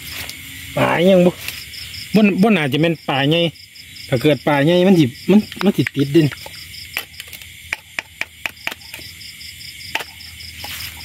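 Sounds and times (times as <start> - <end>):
crickets chirping: 0.0 - 11.0
sharp clicks and snaps: 5.4 - 9.0.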